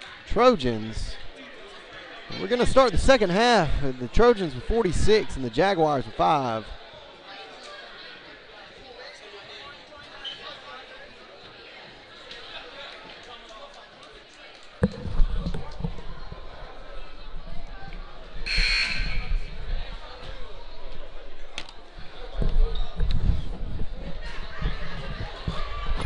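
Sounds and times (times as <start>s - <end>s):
crowd chatter: 0.0s - 26.0s
electronic scoreboard buzzer: 18.5s - 19.3s.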